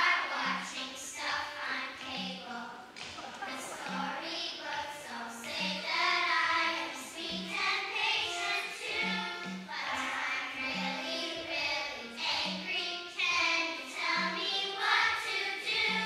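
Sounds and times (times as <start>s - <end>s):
children singing together: 0.0s - 16.0s.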